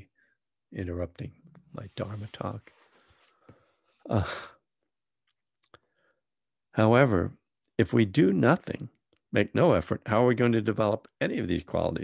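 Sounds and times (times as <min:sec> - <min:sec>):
man sighing uh: 0:04.0 - 0:04.6.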